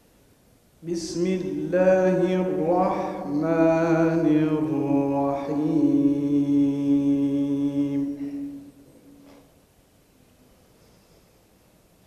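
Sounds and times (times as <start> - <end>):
man chanting into a microphone: 0.8 - 8.7.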